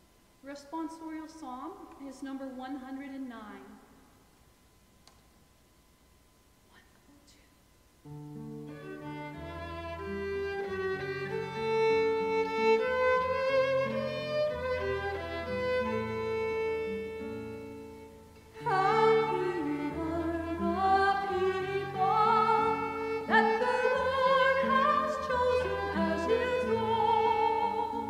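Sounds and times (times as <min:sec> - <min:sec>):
acoustic guitar: 0:08.0 - 0:28.0
violin: 0:08.1 - 0:28.0
woman singing with vibrato: 0:18.6 - 0:28.0.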